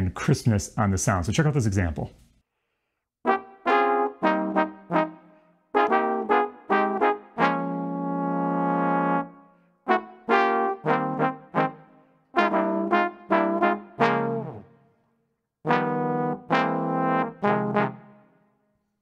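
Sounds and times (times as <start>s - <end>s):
trombone section playing jazz: 3.2s - 9.3s, 9.9s - 14.6s, 15.7s - 18.2s.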